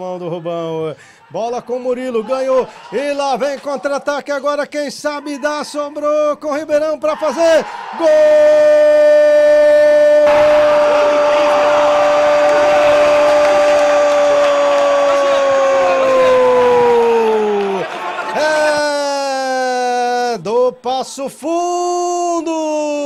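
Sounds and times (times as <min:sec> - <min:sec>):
crowd noise: 0:07.3 - 0:21.0.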